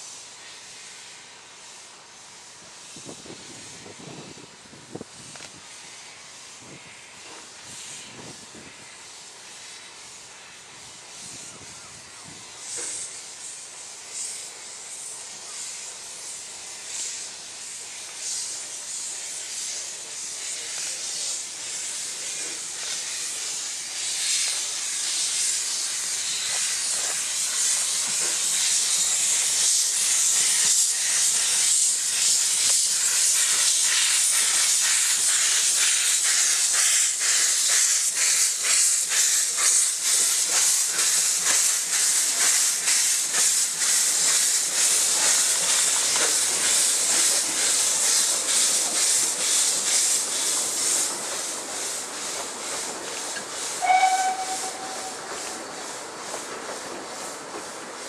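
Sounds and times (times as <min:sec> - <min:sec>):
steam locomotive hissing: 0:00.0 - 0:58.0.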